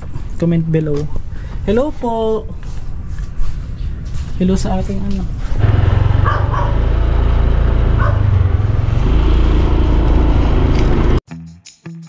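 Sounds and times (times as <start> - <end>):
background guitar music: 10.2 - 12.0.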